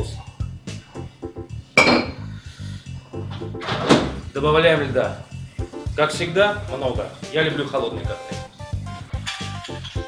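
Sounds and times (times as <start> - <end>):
background music with beat: 0.0 - 10.0
ringing glass clink: 1.8 - 2.2.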